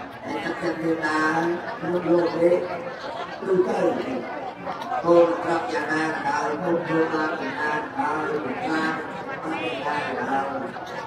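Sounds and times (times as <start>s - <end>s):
people chattering: 0.0s - 11.0s
person speaking through microphone: 0.0s - 11.0s.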